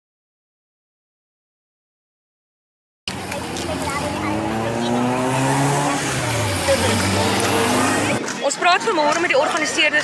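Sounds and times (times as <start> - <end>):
car driving past: 3.1 - 8.2.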